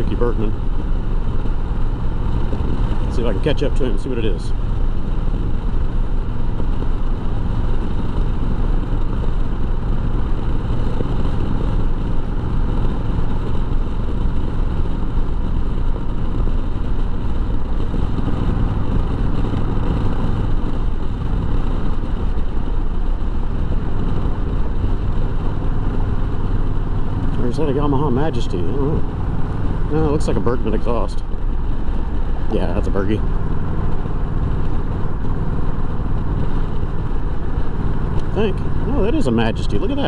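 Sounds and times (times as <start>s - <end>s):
motorcycle engine running: 0.0s - 40.0s
wind rushing over microphone: 0.0s - 40.0s.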